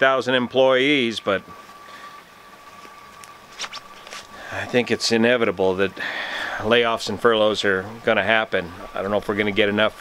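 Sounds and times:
faint background hiss: 0:00.0 - 0:10.0
short breath: 0:06.0 - 0:06.6.

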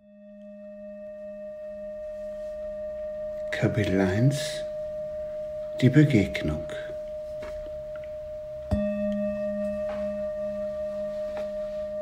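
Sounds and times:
sustained ringing musical tone: 0:00.0 - 0:12.0
wavering low hum: 0:00.0 - 0:12.0.

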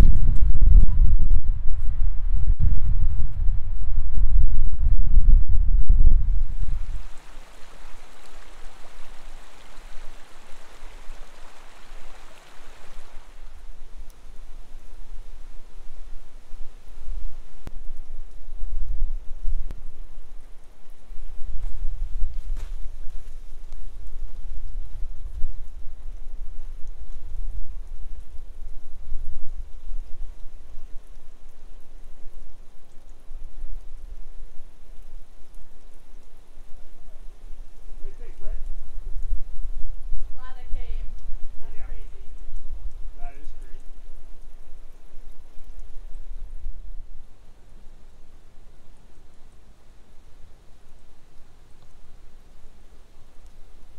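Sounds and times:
wind on microphone: 0:00.0 - 0:52.2
creek water rushing: 0:06.5 - 0:17.6.

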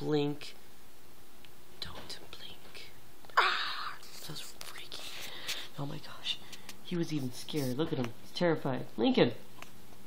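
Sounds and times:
woman whispering: 0:01.8 - 0:06.4
breathy burst of voice: 0:03.4 - 0:04.0.

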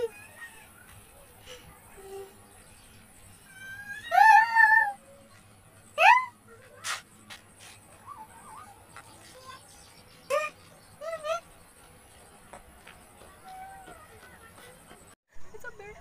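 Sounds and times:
loud high-pitched cries: 0:03.4 - 0:05.0.

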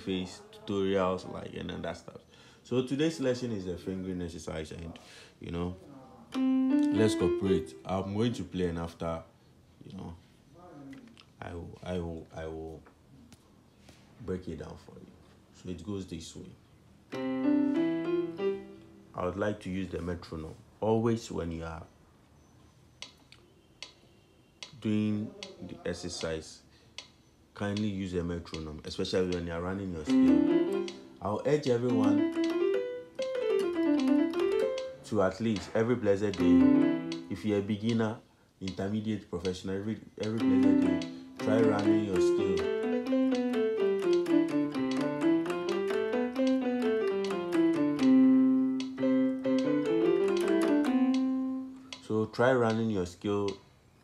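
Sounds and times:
piano exercise: 0:06.2 - 0:08.6, 0:17.0 - 0:19.7, 0:29.6 - 0:38.0, 0:39.9 - 0:52.2
metronome ticking: 0:29.3 - 0:35.2, 0:36.2 - 0:38.0, 0:40.2 - 0:52.1.

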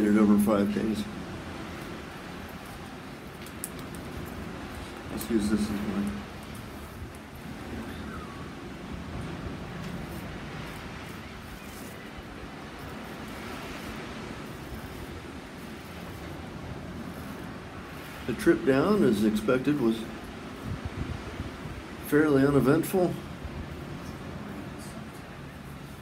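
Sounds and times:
low rumble and hiss: 0:00.0 - 0:26.0.

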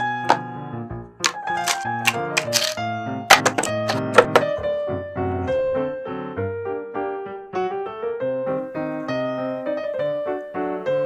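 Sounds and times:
light piano music: 0:00.0 - 0:11.0.

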